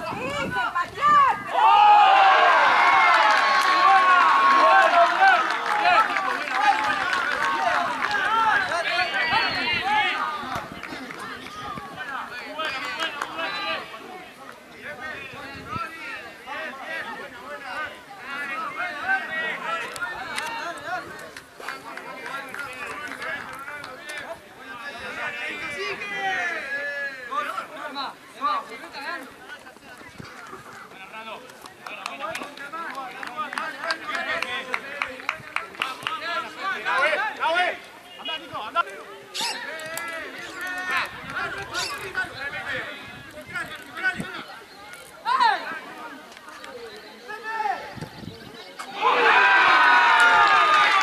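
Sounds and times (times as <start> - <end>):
people shouting and cheering: 0.0 - 29.3, 48.6 - 51.0.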